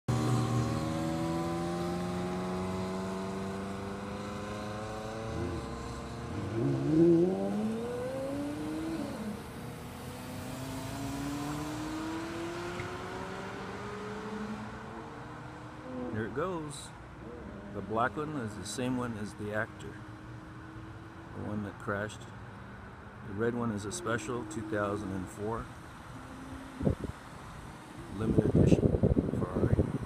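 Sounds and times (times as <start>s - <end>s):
sports car engines accelerating: 0.1s - 30.0s.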